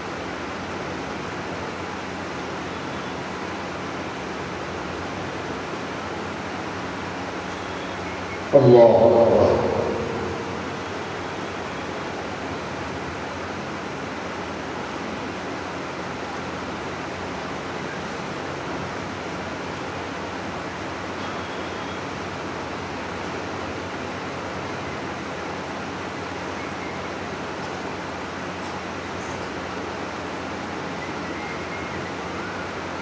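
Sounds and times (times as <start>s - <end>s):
faint low hum: 8.5s - 11.8s.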